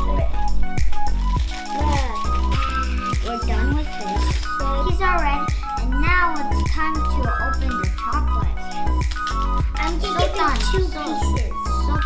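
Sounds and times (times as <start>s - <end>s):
upbeat background music: 0.0s - 12.0s.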